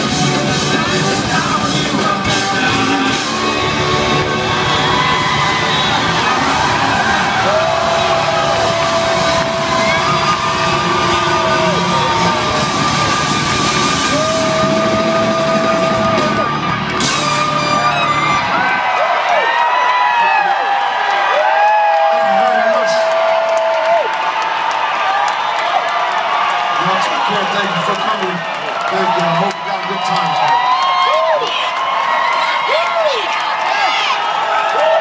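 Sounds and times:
live rock band playing: 0.0 - 18.6
audience yelling: 0.0 - 35.0
crowd cheering and whooping: 0.0 - 35.0.

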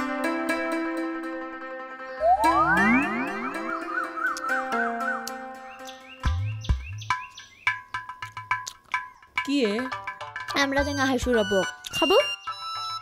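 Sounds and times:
synthesized music: 1.9 - 5.8
upward swoops: 2.2 - 4.6
warbling chirpy synth figure: 2.2 - 4.7.

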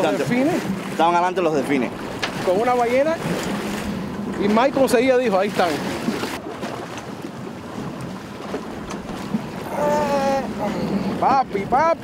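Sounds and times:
water wash and boat noise: 0.0 - 12.0.

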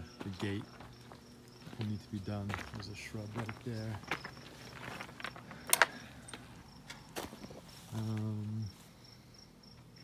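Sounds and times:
footsteps in yard: 0.0 - 9.0.

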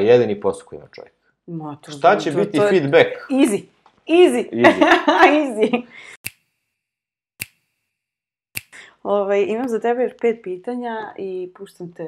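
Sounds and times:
sharp ringing snaps: 7.4 - 8.8.

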